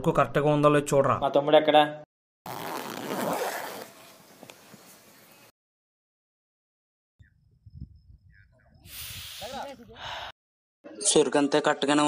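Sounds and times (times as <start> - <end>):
zipper on fabric backpack: 2.5 - 4.1.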